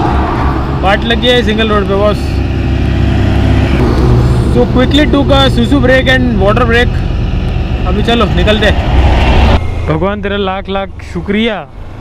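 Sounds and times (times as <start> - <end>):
rushing noise: 0.0 - 11.1
vehicle engine humming: 0.0 - 12.0.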